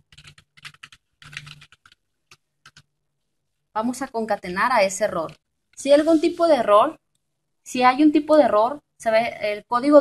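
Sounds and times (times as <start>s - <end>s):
typing on computer keyboard: 0.0s - 2.9s.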